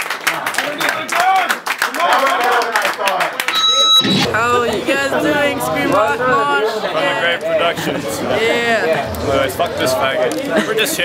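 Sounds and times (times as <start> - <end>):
sharp hand claps: 0.0 - 3.6
steady high-pitched tone: 3.5 - 7.2
men talking and laughing: 4.4 - 11.0.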